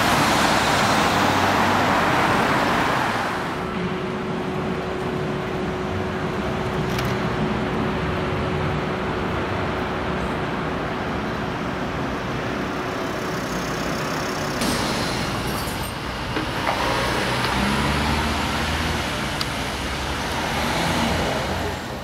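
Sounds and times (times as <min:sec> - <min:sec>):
passing vehicles: 0:00.0 - 0:22.0.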